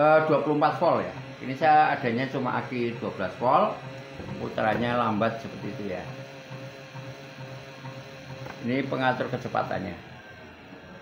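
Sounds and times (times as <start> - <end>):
electric motor humming: 0.0 - 11.0.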